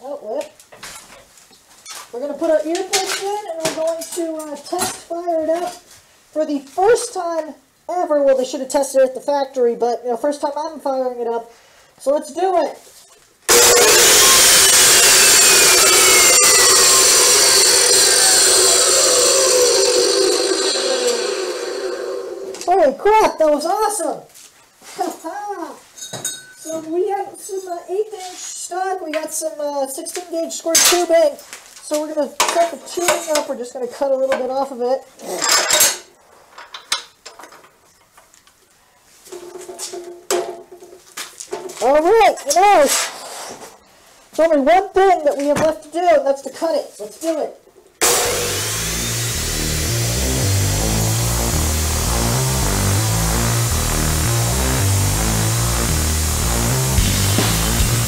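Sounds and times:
chop saw motor whine: 13.5s - 22.7s, 48.0s - 58.0s.

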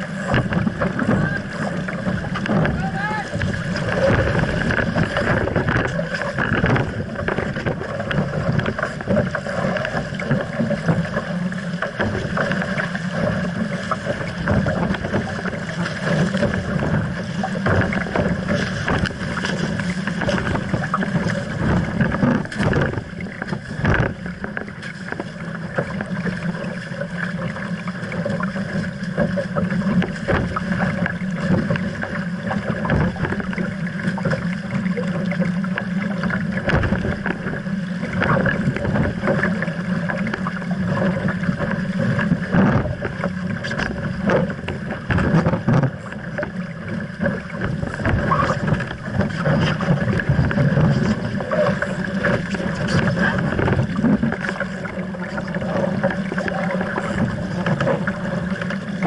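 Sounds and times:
wind buffeting microphone: 0.0s - 8.8s
water rushing along a boat hull: 0.0s - 59.0s
waves slapping: 0.0s - 59.0s.

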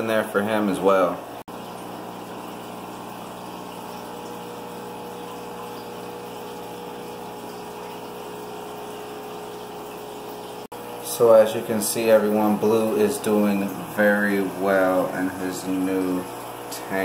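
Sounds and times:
water pump humming: 0.0s - 17.0s
air bubbles in water: 1.5s - 10.7s.

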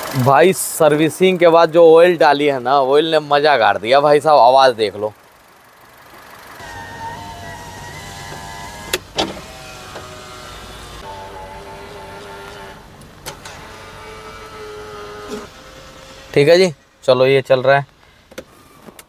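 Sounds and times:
car engine humming: 0.0s - 19.0s.

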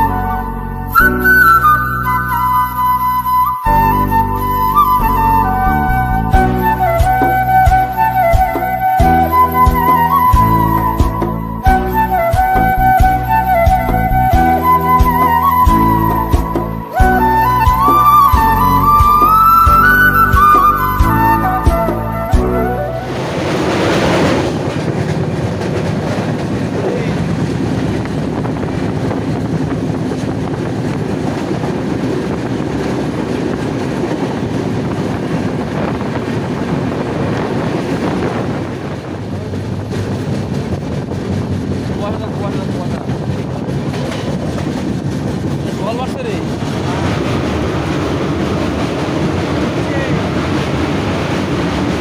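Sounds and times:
goods train passing: 0.0s - 52.0s
train wheels rumbling on rails: 0.0s - 52.0s
rushing air: 4.4s - 52.0s.

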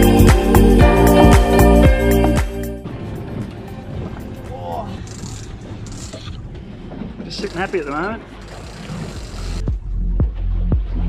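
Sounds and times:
boat noise: 0.0s - 10.0s
wind rumble: 2.8s - 11.0s.

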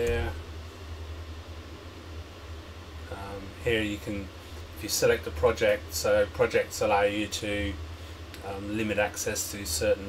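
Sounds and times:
low hum: 0.0s - 7.0s.

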